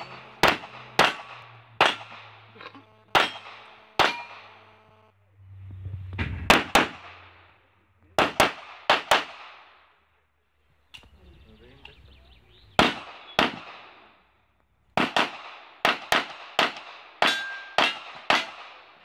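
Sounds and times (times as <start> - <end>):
pistol shots echoing: 0.0 - 4.7, 6.5 - 7.4, 8.2 - 9.8, 12.7 - 14.2, 15.0 - 19.0.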